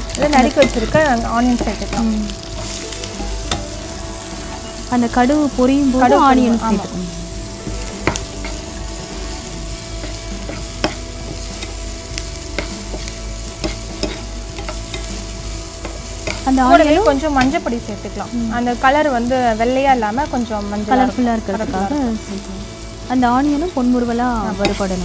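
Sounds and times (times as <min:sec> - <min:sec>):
metal spoon scraping a pan: 0:00.0 - 0:06.0, 0:07.5 - 0:17.7, 0:23.6 - 0:25.0
onions sizzling in a frying pan: 0:00.0 - 0:25.0
person talking: 0:04.9 - 0:07.2, 0:16.5 - 0:18.7.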